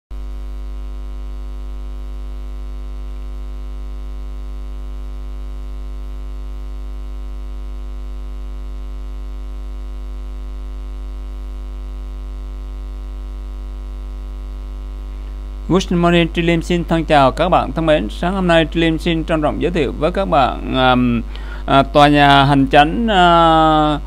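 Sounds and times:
low buzzy electrical hum: 0.2 - 24.0.

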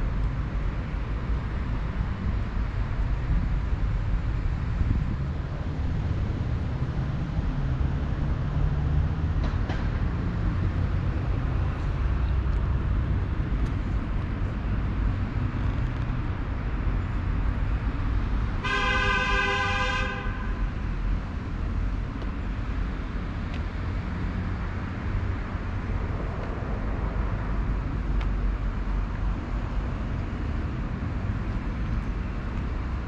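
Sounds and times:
road traffic rumble: 0.0 - 33.0
vehicle horn honking: 18.6 - 20.6.

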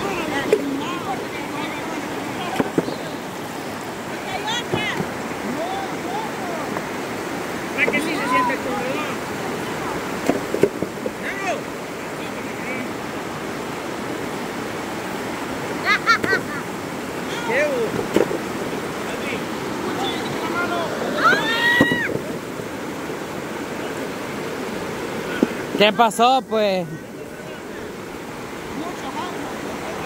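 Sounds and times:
voices calling out: 0.0 - 10.3, 11.0 - 30.0
river water rushing over rocks: 0.0 - 30.0.

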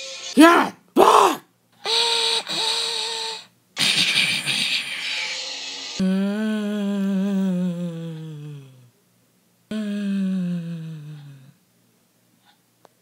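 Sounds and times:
vocal hissing rush: 3.8 - 6.2
vocal low hum sliding down: 3.8 - 9.0, 9.7 - 11.6.

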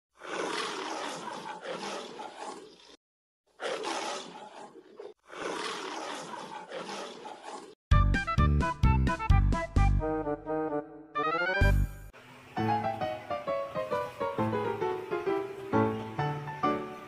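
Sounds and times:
lion roaring: 0.2 - 3.0, 3.6 - 7.8.

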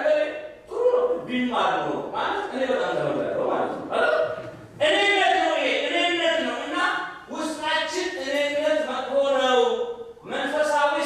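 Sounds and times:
man preaching into microphone: 0.0 - 11.0.

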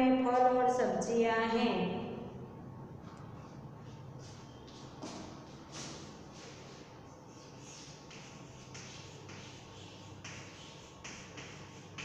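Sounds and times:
steady low hum: 0.0 - 12.0
chalk scraping on chalkboard: 5.8 - 12.0.

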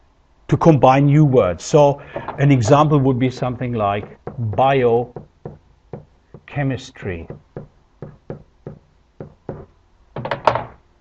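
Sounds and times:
pen tapping on whiteboard: 4.0 - 6.5, 7.3 - 10.6.

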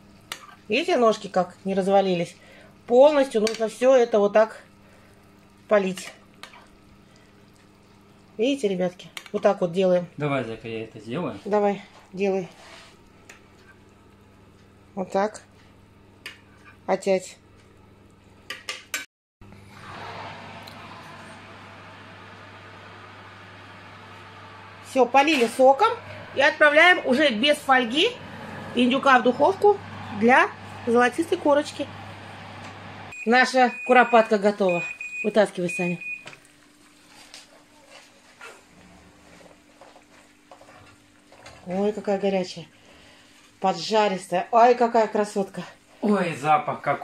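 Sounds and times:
low steady hum: 19.5 - 36.2
oven electronic beep: 33.1 - 36.4.

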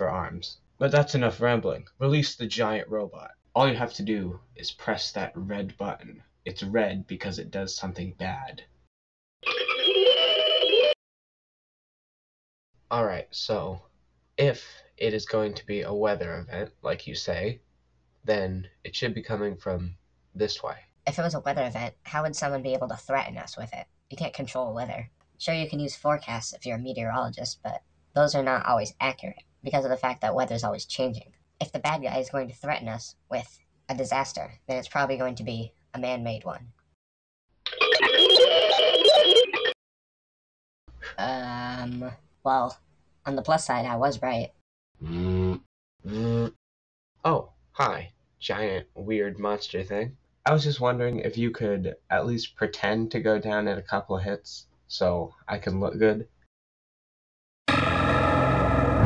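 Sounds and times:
wavering monster cry: 57.7 - 59.0.

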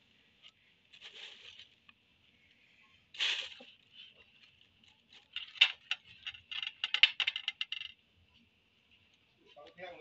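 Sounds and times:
plastic bag crinkling: 0.8 - 2.0.

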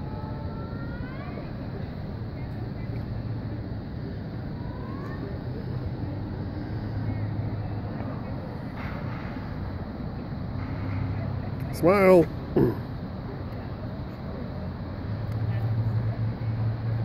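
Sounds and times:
city road traffic: 0.0 - 17.0.

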